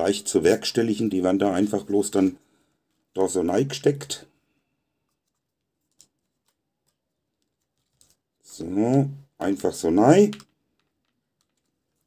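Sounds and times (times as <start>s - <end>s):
faint plastic clicks: 10.2s - 12.0s.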